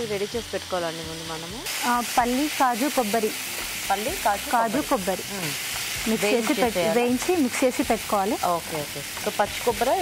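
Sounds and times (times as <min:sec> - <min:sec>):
food sizzling in oil: 0:00.0 - 0:10.0
person speaking: 0:04.6 - 0:07.2.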